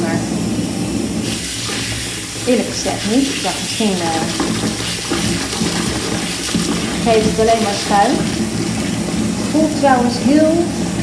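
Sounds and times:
bath tap running into tub: 0.0s - 11.0s
water pouring over hands: 1.2s - 10.1s.

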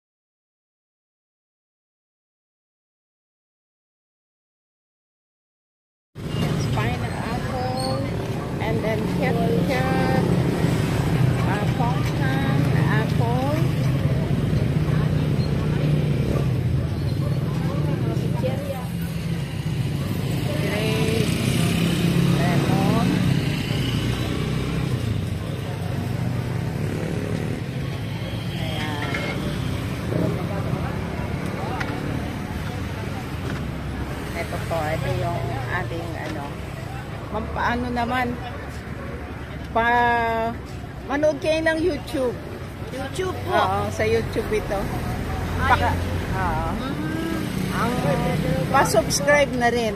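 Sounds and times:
voices talking: 6.3s - 49.9s.

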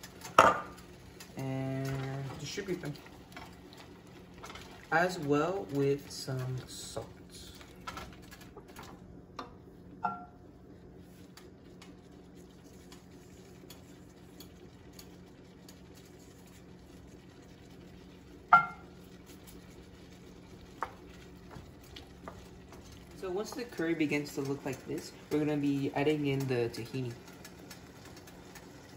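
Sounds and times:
wooden spoon stirring in pan: 0.0s - 9.8s, 10.6s - 28.9s
food sizzling: 0.0s - 28.9s
steady low hum: 0.0s - 28.9s.

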